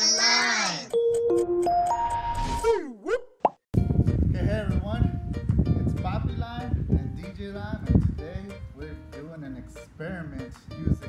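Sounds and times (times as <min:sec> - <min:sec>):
music with voices: 0:03.9 - 0:11.0.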